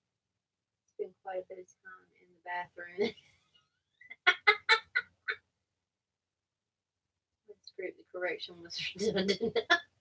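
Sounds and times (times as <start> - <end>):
woman laughing: 4.1 - 5.4.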